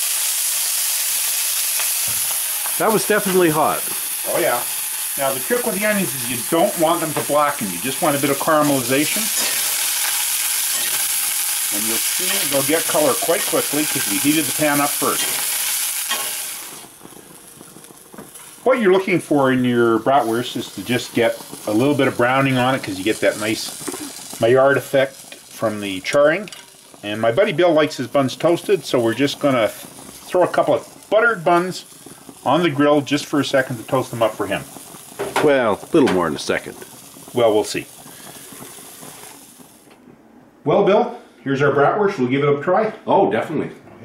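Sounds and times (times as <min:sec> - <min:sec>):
onions sizzling in oil: 0:00.0 - 0:39.9.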